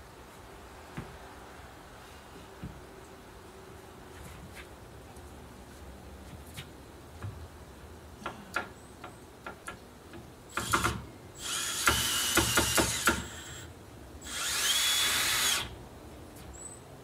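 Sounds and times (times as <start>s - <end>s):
cordless drill driving screws: 10.5s - 15.7s
sharp drill clicks: 10.5s - 15.7s.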